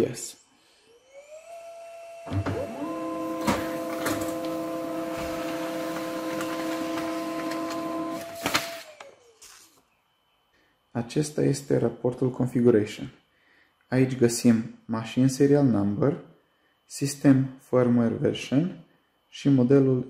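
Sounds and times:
printer motor whine: 0.8s - 9.6s
paper feed clicks: 5.4s - 9.1s.

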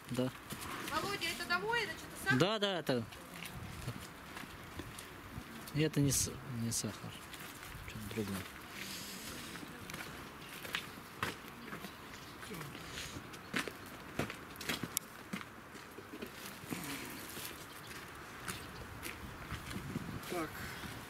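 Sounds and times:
footsteps scuffing across yard: 0.3s - 2.4s, 3.0s - 5.8s, 6.8s - 21.0s.

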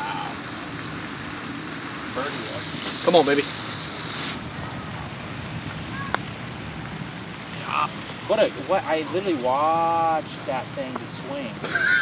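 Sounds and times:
wind noise on microphone: 0.0s - 8.3s.

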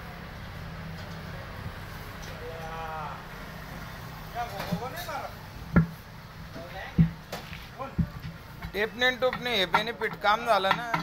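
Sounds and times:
tyre lever knocking on steel rim: 8.0s - 11.0s.

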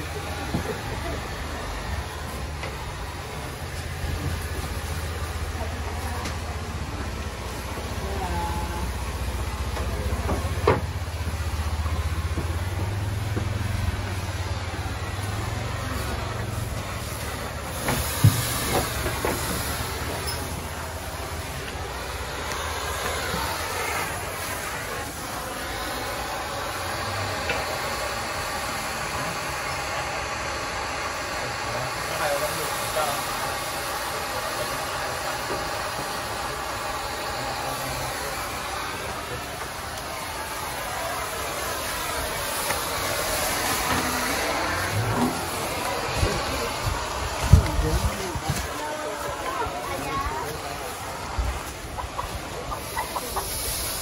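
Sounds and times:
fogger hissing rush: 0.0s - 54.0s.

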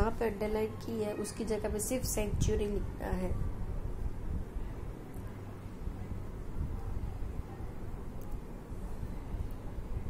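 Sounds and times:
woman's voice: 0.0s - 3.4s.

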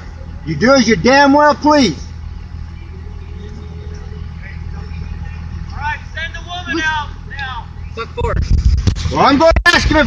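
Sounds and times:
faint high hum: 0.0s - 9.2s
vehicle engine idling: 0.0s - 10.0s.

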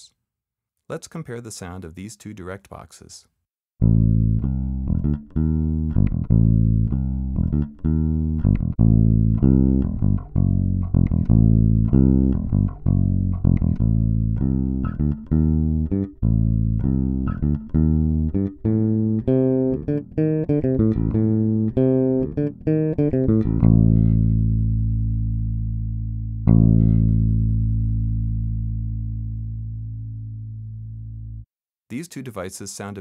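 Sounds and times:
electric bass guitar plucked notes: 3.8s - 31.4s.

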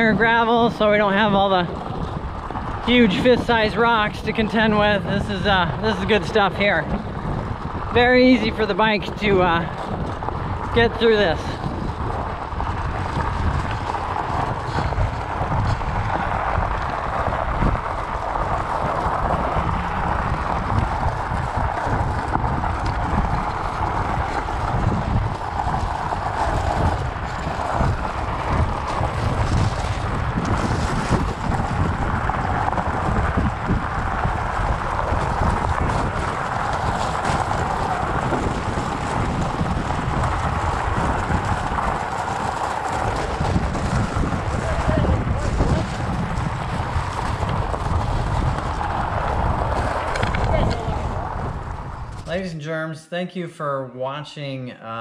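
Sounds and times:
bike tyres crunching on gravel: 0.0s - 52.4s
wind buffeting microphone: 0.0s - 52.5s.

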